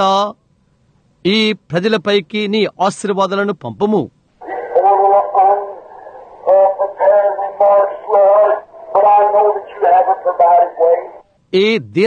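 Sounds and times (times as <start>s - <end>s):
man speaking through radio: 4.4s - 11.2s.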